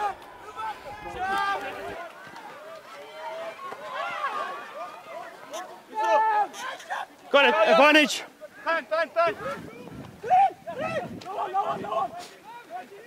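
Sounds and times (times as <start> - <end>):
open-air match sound: 12.1 - 12.6.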